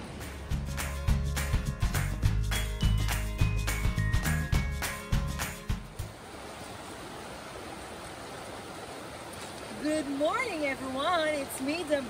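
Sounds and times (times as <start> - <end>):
water rushing: 0.0 - 1.6, 2.8 - 12.0.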